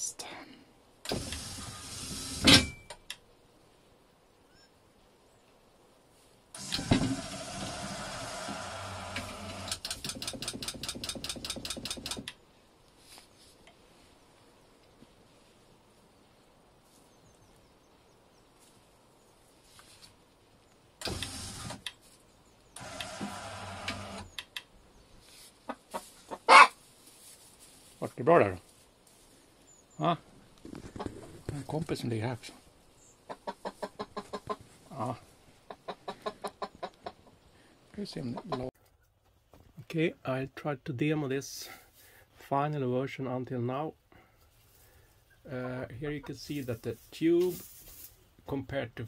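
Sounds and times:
sharp clicks: 9.2s - 12.4s, 23.9s - 24.7s.

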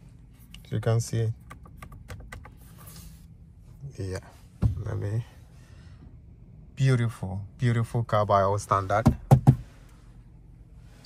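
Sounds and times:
hand tapping dashboard trim: 1.4s - 2.6s, 9.0s - 9.7s.

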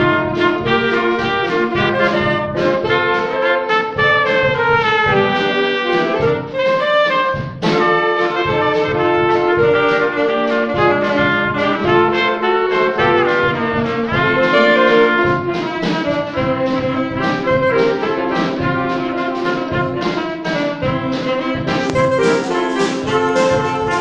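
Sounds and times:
drum kit steady beat: 0.0s - 24.0s
saxophones and trumpet playing: 0.0s - 24.0s.

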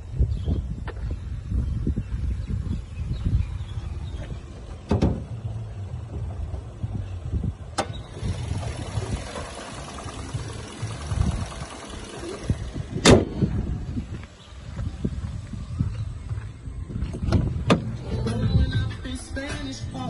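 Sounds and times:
car engine running: 4.0s - 15.1s.

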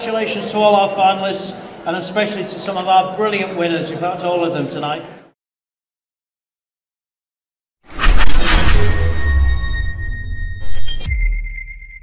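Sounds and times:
high ringing tone: 8.2s - 12.0s.

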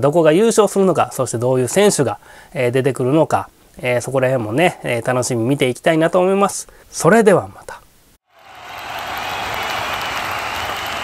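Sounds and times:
crowd applause: 8.3s - 11.0s.

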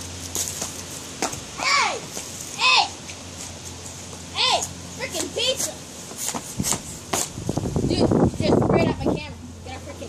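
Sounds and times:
child yelling: 1.6s - 3.0s, 4.3s - 5.8s.

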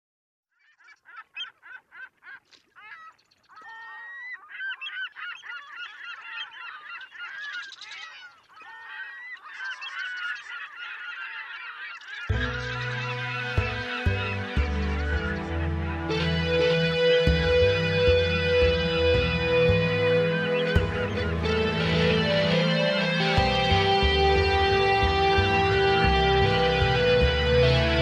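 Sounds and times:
gulls calling: 0.7s - 28.0s
music with deep bass line: 12.3s - 28.0s.

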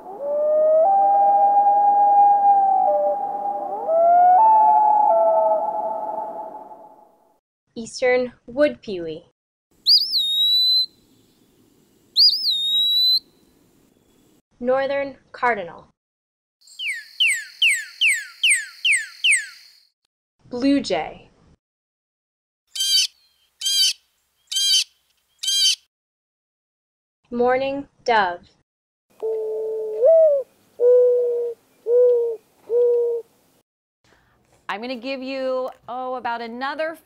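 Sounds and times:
loon wails: 0.0s - 7.0s
cardinal whistled song: 2.3s - 7.0s, 9.8s - 11.0s, 12.2s - 13.3s, 16.7s - 19.9s.

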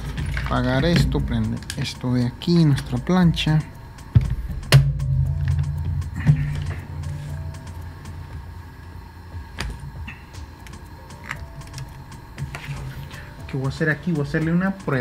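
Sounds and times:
small electric fan humming: 0.0s - 15.0s.

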